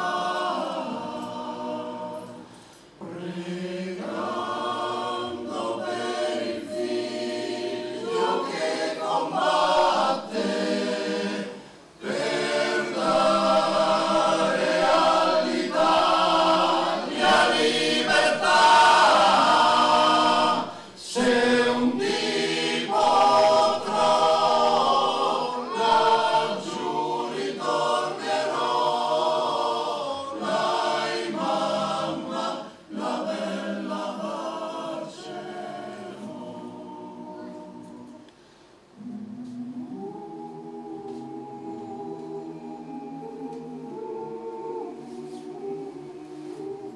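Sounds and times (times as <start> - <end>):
male choir singing a cappella: 0.0 - 38.3, 39.0 - 46.9.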